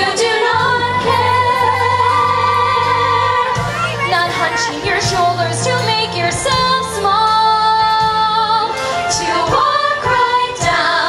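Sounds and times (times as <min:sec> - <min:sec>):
steady bass line: 0:00.0 - 0:10.8
group singing musical-theatre song: 0:00.0 - 0:11.0.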